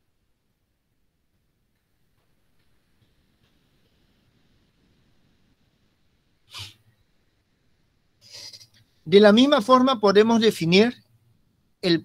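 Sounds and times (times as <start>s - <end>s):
man sharp breath: 6.5s - 6.8s
soft intake of breath: 6.5s - 7.0s.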